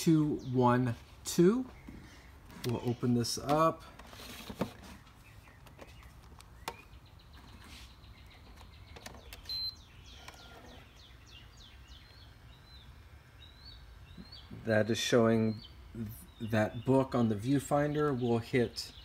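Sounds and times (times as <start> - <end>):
faint bird chirps: 4.8 - 19.0.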